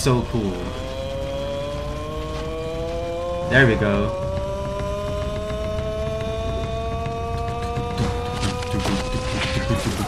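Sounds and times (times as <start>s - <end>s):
sustained tone rising in pitch: 0.0s - 10.0s.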